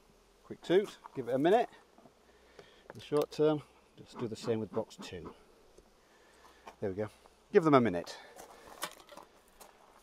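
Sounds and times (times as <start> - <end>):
faint footsteps on garden ground: 0.5 - 10.0.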